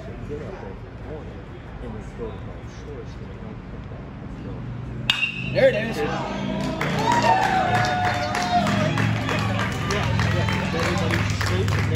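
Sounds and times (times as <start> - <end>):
spectators cheering and clapping: 5.6 - 11.9
long high shout: 6.9 - 8.9.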